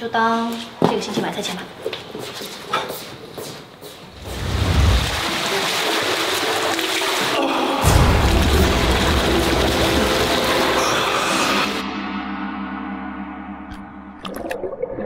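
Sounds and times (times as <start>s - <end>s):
water splashing in pool: 4.2s - 11.8s, 14.2s - 15.0s
background music with low booms: 7.8s - 15.0s.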